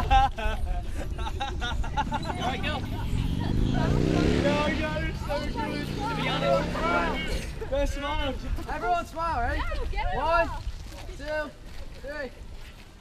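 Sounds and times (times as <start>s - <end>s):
people chattering: 0.0s - 12.4s
vehicle engine revving: 2.0s - 7.6s.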